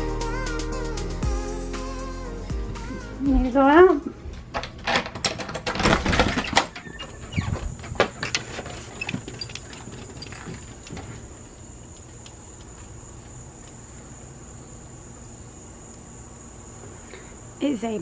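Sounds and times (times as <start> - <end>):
crickets chirring: 6.2 - 18.0.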